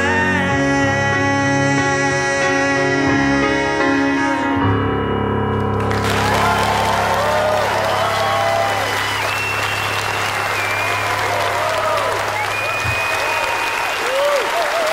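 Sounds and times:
piano chord: 0:00.0 - 0:13.9
audience applauding: 0:05.8 - 0:14.9
whoops and whistles: 0:07.5 - 0:14.6.

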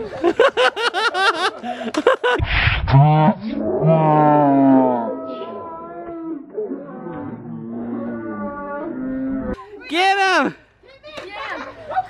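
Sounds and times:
man yelling: 0:09.9 - 0:10.6.

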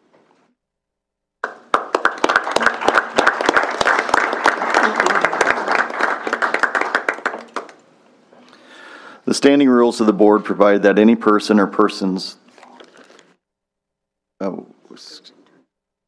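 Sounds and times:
audience applause: 0:01.4 - 0:07.8.

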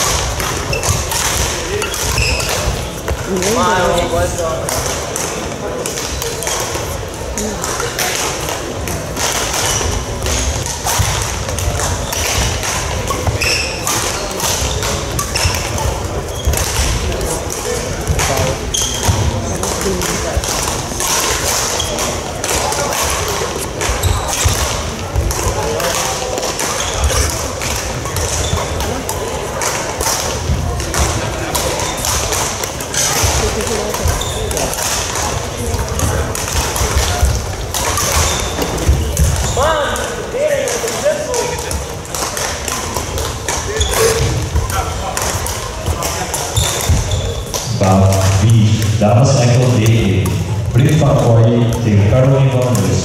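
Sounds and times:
shoe squeaks on court floor: 0:00.0 - 0:03.0, 0:09.5 - 0:11.0, 0:11.8 - 0:16.9, 0:18.4 - 0:19.6, 0:21.7 - 0:22.2, 0:23.8 - 0:24.8, 0:26.5 - 0:29.0, 0:32.9 - 0:35.0, 0:37.8 - 0:39.8, 0:43.7 - 0:44.9, 0:45.9 - 0:47.8
racket hitting shuttlecock: 0:00.0 - 0:03.6, 0:04.6 - 0:48.9
babble of voices: 0:00.0 - 0:53.0.

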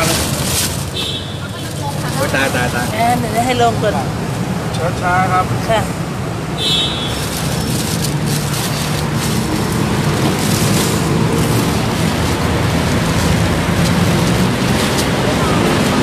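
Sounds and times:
traffic rushing noise: 0:00.0 - 0:16.0.

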